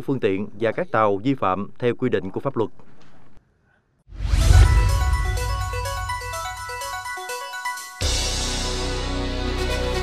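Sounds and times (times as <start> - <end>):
electronic jingle with chime notes: 4.2 - 8.9.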